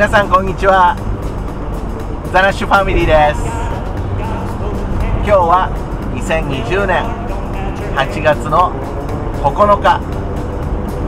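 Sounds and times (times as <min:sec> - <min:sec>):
car engine rumble: 0:00.0 - 0:11.0
road noise: 0:00.0 - 0:11.0.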